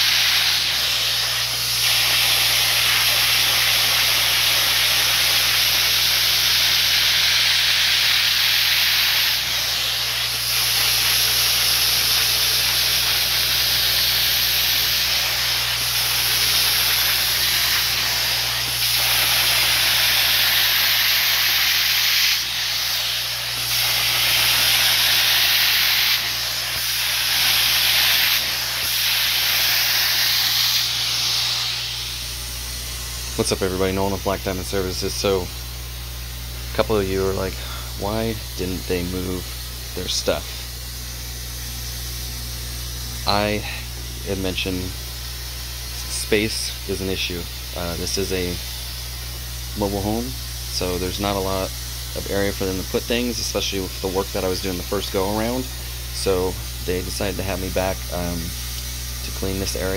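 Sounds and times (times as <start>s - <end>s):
upholstery extractor spray and suction: 0.0s - 33.4s.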